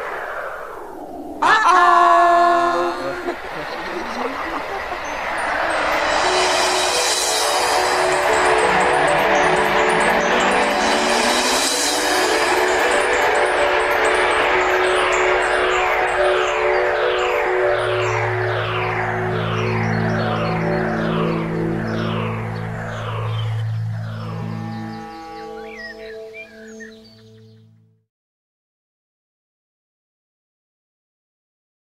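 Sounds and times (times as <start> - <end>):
falling swoops: 0.0 - 8.0
low drone: 0.0 - 27.8
shimmering chime-like whoosh: 3.0 - 27.0.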